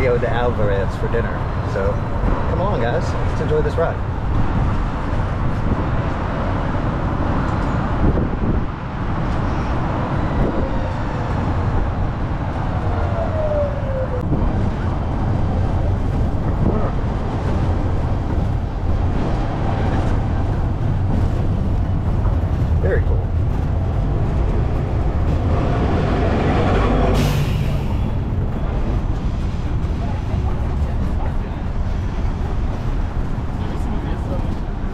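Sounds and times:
road and wind rumble: 0.0s - 34.9s
surrounding traffic: 0.0s - 34.9s
tyres on city streets: 0.0s - 34.9s.

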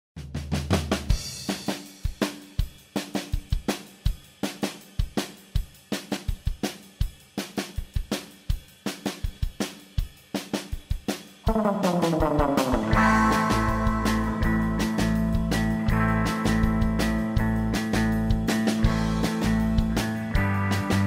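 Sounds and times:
drum kit playing a beat: 0.2s - 21.0s
low bass note: 11.5s - 16.0s.

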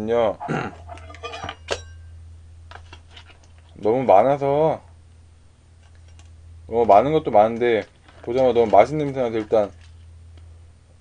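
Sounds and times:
steady low hum: 0.0s - 11.0s
metal ladle clinking against dishes: 1.0s - 2.0s.

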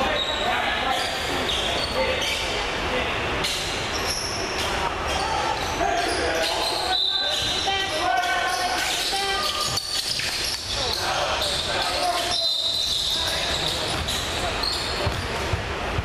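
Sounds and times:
sneaker squeaks: 0.0s - 2.6s, 3.4s - 16.0s
players calling out: 4.0s - 15.5s
basketball bouncing: 12.8s - 16.0s.

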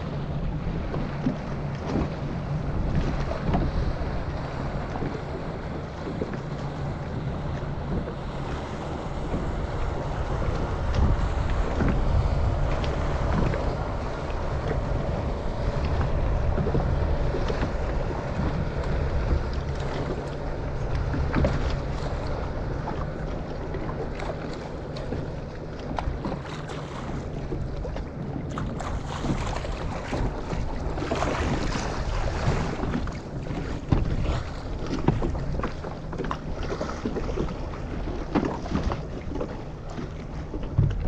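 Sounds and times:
water splashing against boat hull: 0.0s - 41.0s
wind buffeting microphone: 0.0s - 41.0s.

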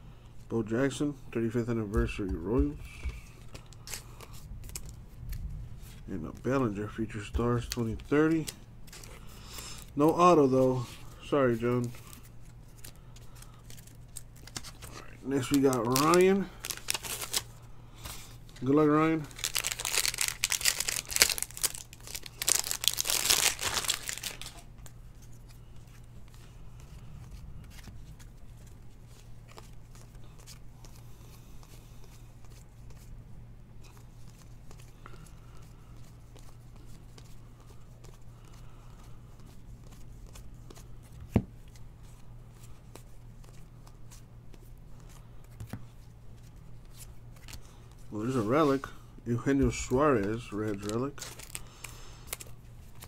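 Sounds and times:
low steady hum: 0.0s - 53.0s
cards being handled: 0.9s - 33.2s, 33.8s - 53.0s
foil wrapper tearing and crinkling: 14.2s - 17.5s, 19.2s - 24.6s, 49.7s - 53.0s.

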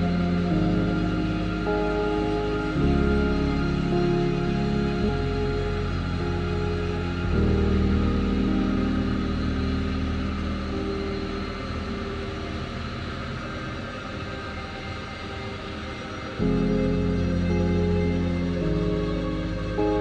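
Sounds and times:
louder music: 0.0s - 20.0s
music of held low notes: 0.0s - 20.0s.

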